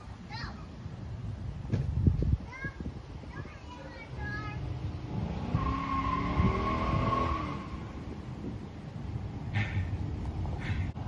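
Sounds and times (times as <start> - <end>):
car engine revving: 4.6 - 8.2
tire squeal: 5.4 - 8.1.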